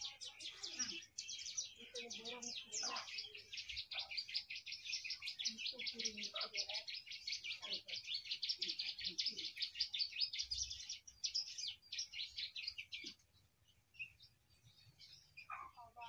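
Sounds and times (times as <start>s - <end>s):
songbird chattering song: 0.0s - 16.0s.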